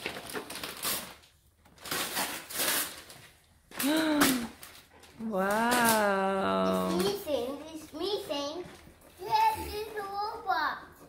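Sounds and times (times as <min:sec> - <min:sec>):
cardboard and plastic packaging rustling: 0:00.0 - 0:06.1.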